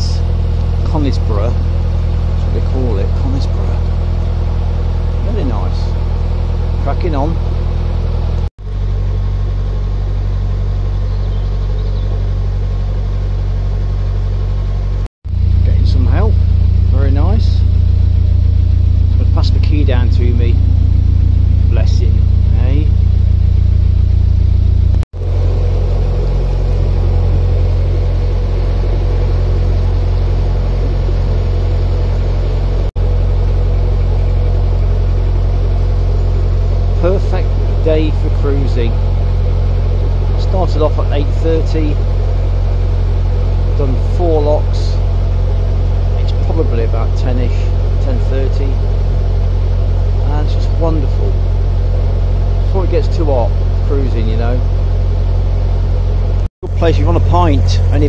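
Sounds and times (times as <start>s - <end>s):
diesel engine humming: 0.0s - 58.0s.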